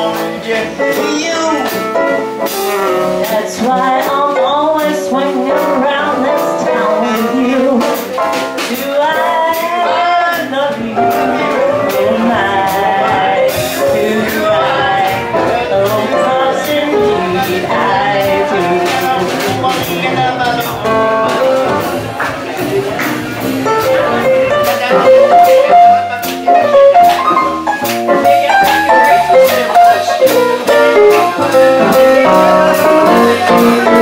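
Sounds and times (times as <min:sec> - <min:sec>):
bass line: 0:00.0 - 0:34.0
drum kit beat: 0:00.0 - 0:34.0
live swing band playing: 0:00.0 - 0:34.0
melody notes: 0:00.8 - 0:34.0.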